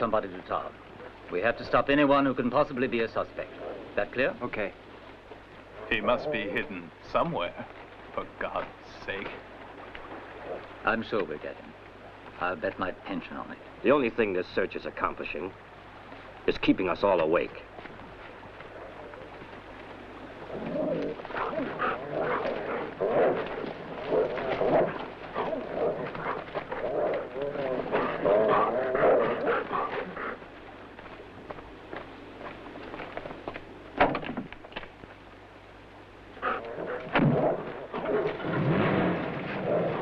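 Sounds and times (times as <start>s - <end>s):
dogs barking and baying: 20.5s - 30.6s, 36.4s - 40.0s.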